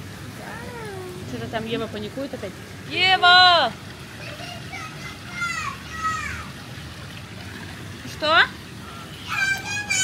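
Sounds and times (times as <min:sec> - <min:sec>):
low background hum: 0:00.0 - 0:10.0
child's high-pitched calls: 0:04.2 - 0:06.6, 0:09.2 - 0:10.0.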